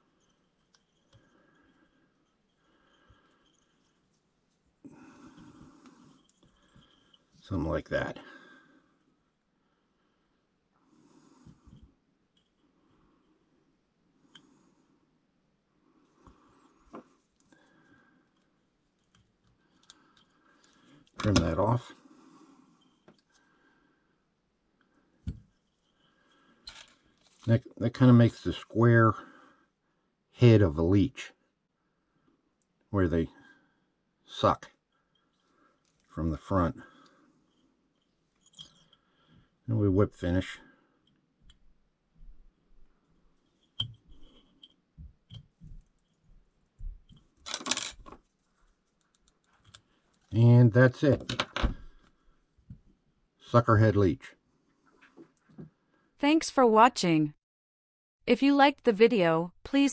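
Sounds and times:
metal tools clattering: 0:47.2 - 0:48.2.

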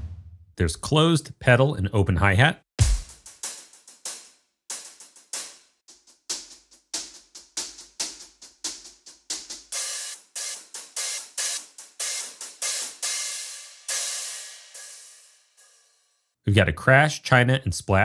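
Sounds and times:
hi-hat hits: 0:02.8 - 0:16.1.

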